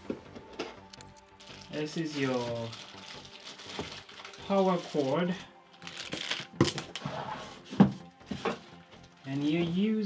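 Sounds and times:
packaging knocks and rustles: 0:00.6 - 0:07.0.

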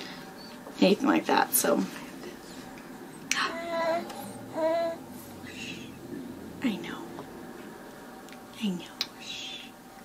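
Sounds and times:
baby squealing coos: 0:03.4 - 0:05.0.

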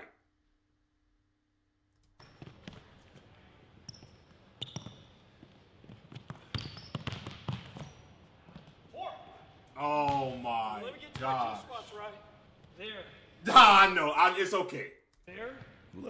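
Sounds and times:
sneakers squeaking: 0:02.1 - 0:13.4
basketball dribbled on wooden court: 0:02.2 - 0:08.9.

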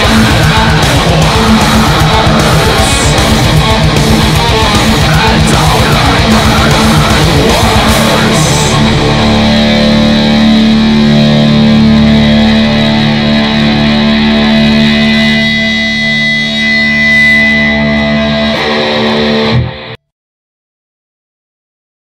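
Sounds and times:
distorted electric guitar chords: 0:00.0 - 0:20.1.

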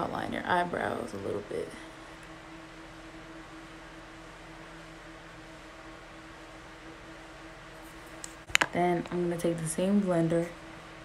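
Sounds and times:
low room hum with hiss: 0:00.0 - 0:11.0.

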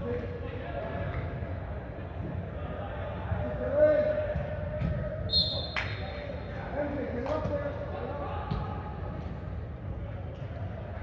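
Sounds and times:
players shouting in echoing hall: 0:00.0 - 0:11.0.

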